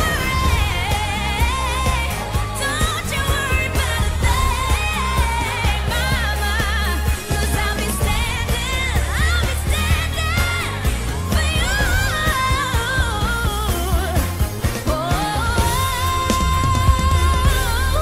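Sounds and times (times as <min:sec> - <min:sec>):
person singing pop song: 0:00.0 - 0:18.0
steady bass line: 0:00.0 - 0:18.0.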